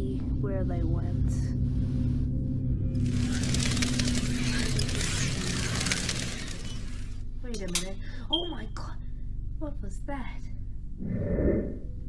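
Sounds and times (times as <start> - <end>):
toy car motor running: 3.0 - 7.2.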